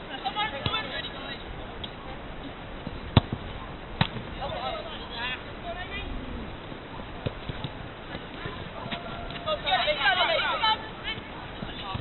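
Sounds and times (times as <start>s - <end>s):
women shouting: 8.8s - 11.4s.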